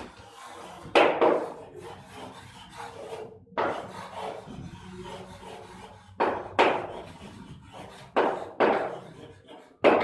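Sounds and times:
chalk scraping on a chalkboard: 0.0 - 10.0.

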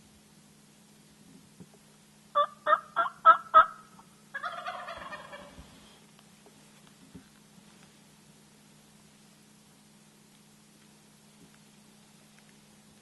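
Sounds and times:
turkey gobbling: 2.3 - 5.7.

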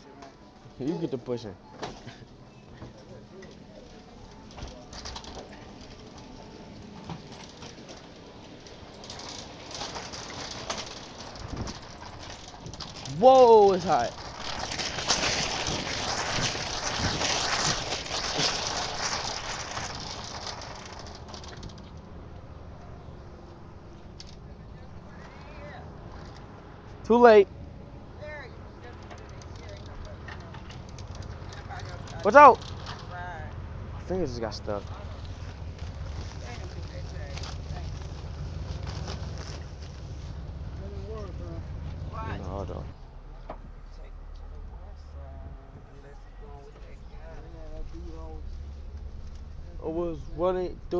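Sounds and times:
wind buffeting microphone: 11.2 - 20.1.

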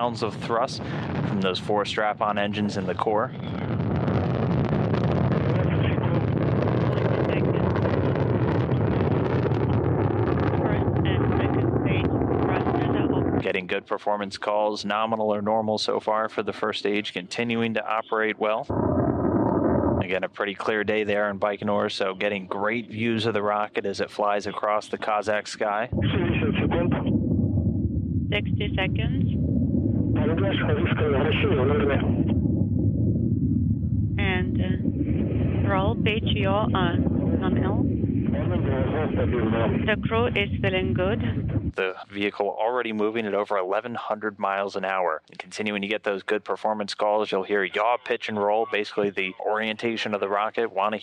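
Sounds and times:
rocket engines deep rumble: 0.0 - 51.0.

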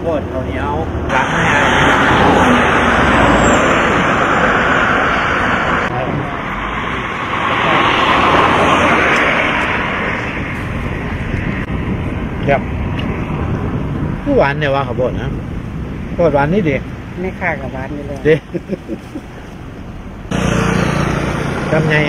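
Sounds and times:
vehicles passing on road: 0.0 - 22.0.

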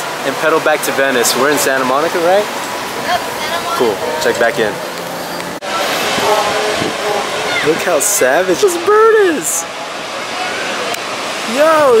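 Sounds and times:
ocean surf: 0.0 - 12.0
wind: 0.0 - 12.0.

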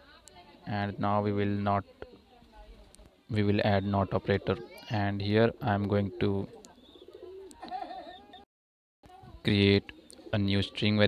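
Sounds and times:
faint cooing: 6.9 - 8.4.

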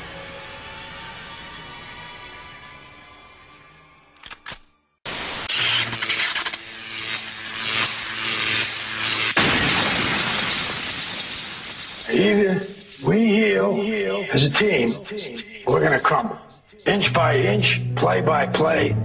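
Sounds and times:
loud crashing and shattering: 9.4 - 12.4
smooth hiss: 10.2 - 14.5
man talking: 12.1 - 19.0.

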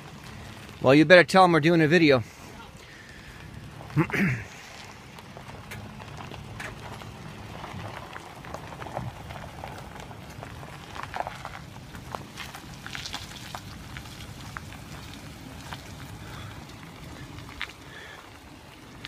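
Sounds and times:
gravel crunching under tires: 0.0 - 19.0
pickup engine low rumble: 0.0 - 19.0.

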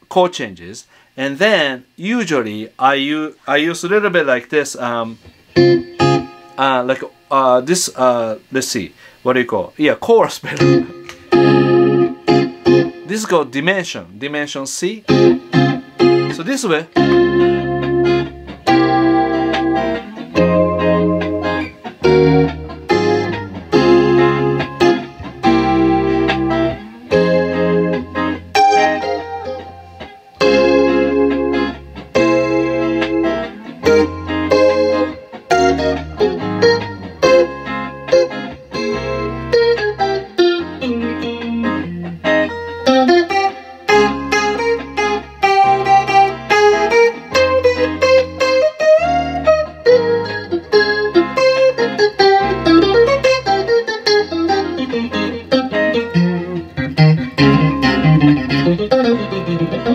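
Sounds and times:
backing track with bass pattern: 3.8 - 8.4, 10.4 - 13.7, 14.8 - 59.9
electric guitar melody with chorus: 5.2 - 7.3, 10.5 - 13.3, 15.0 - 59.9.

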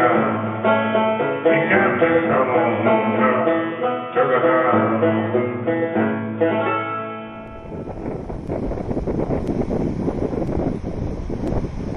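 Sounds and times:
wind buffeting microphone: 7.4 - 11.9.

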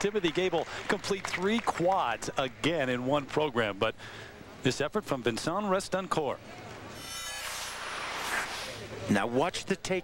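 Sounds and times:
crowd applauding: 0.0 - 2.0
whoosh transition: 7.0 - 9.0.

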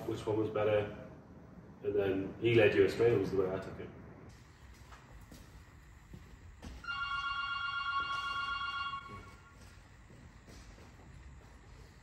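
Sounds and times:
electronic ringing tone: 6.8 - 9.5.

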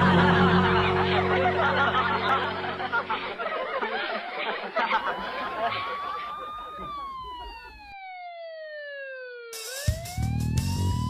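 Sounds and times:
siren-like wail: 4.9 - 11.0.

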